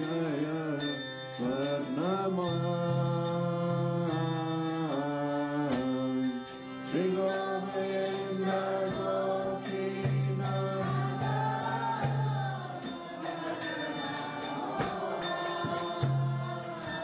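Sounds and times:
person singing a chant: 0:00.0 - 0:17.0.

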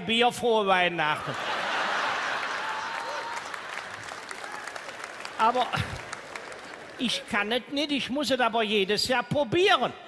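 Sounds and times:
audience laughing: 0:01.2 - 0:04.3, 0:05.5 - 0:06.9
audience applauding: 0:01.5 - 0:07.3.

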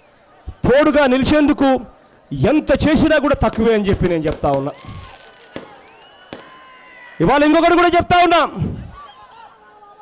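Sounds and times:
large crowd noise: 0:00.0 - 0:10.0
firecracker bangs: 0:03.4 - 0:06.6
faint whistles: 0:05.0 - 0:07.2.

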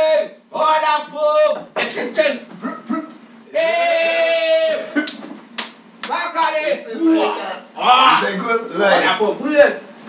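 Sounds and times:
sharp hand slaps: 0:05.0 - 0:06.2.

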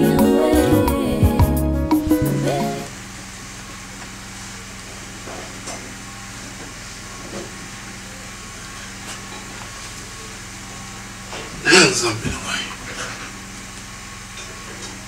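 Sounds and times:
music jingle: 0:00.0 - 0:02.9
room noise with low hum: 0:02.9 - 0:15.0
man sitting on fabric sofa: 0:11.6 - 0:12.8.

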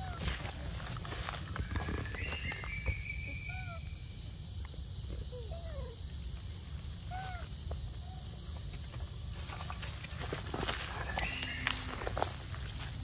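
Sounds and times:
rustling of leaves and twigs: 0:00.0 - 0:03.8, 0:06.4 - 0:13.0.

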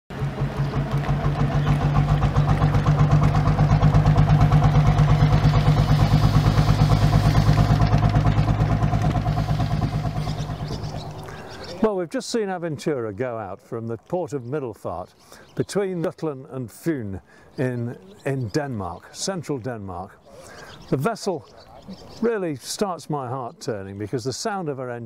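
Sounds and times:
boat engine motoring past: 0:00.1 - 0:12.0.

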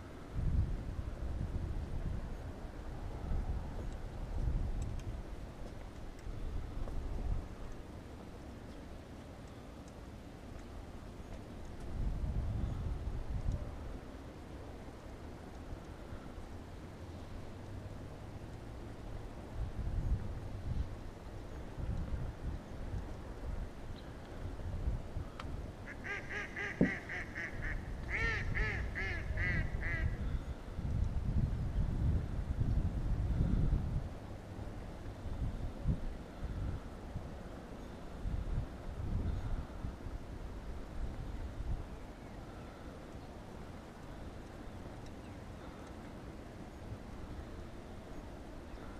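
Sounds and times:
waterbird calling: 0:25.9 - 0:30.2.

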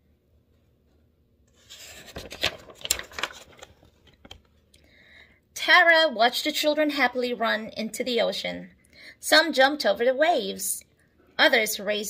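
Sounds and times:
paper page turning: 0:01.5 - 0:04.6.

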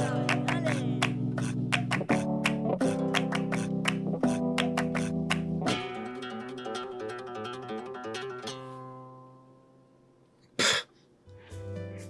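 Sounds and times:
man coughing: 0:10.6 - 0:10.9
music with low bass: 0:11.3 - 0:12.0.

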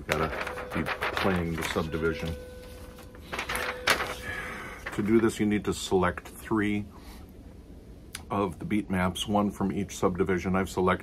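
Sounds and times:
paper sheets shuffling: 0:00.0 - 0:05.4.

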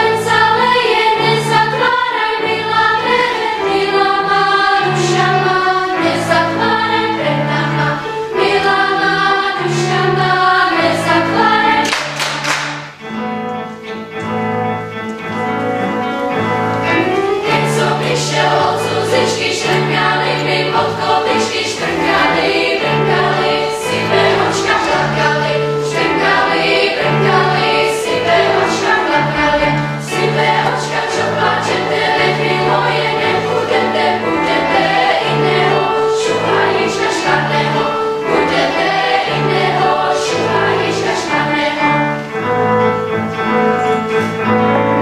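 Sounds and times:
children's choir singing: 0:00.0 - 0:13.3, 0:15.8 - 0:45.0
piano accompaniment: 0:00.0 - 0:45.0.

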